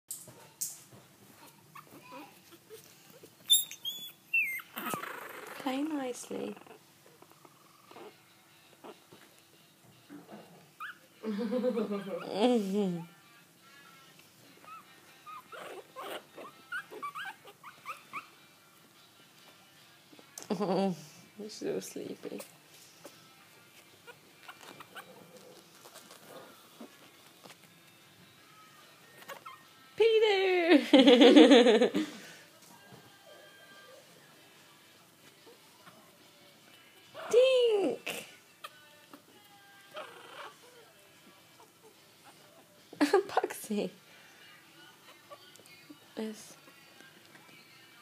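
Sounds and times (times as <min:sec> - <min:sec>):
puppies squeaking and whimpering: 0:01.3 - 0:09.2, 0:10.6 - 0:13.1, 0:14.5 - 0:18.5, 0:22.3 - 0:27.6, 0:29.0 - 0:29.9, 0:36.8 - 0:37.5, 0:38.5 - 0:42.8, 0:45.0 - 0:47.0
puppy high-pitched squeal: 0:03.4 - 0:05.6, 0:10.8 - 0:11.1, 0:14.6 - 0:18.4, 0:24.1 - 0:25.1.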